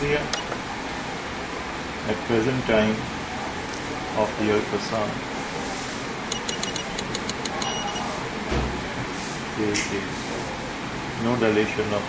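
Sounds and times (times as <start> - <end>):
room hum: 0.0 - 12.0
short high electronic beeps: 6.3 - 8.1.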